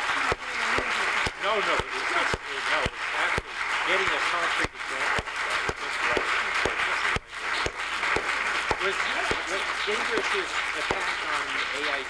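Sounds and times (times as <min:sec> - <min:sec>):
audience applauding: 0:00.0 - 0:12.0
voices talking: 0:08.6 - 0:12.0.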